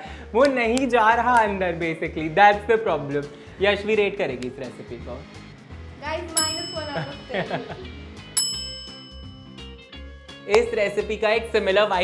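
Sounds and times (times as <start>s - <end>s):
bright bell-like ding: 6.4s - 9.9s.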